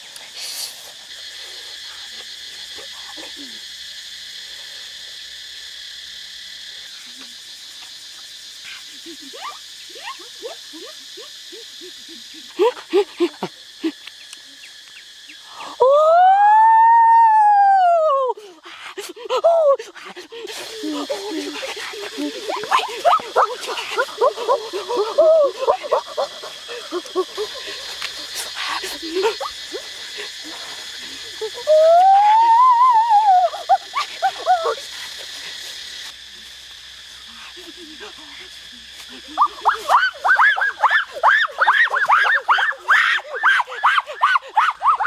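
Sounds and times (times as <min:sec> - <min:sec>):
high insect drone: 0:00.0 - 0:45.0
man howling: 0:31.7 - 0:33.6.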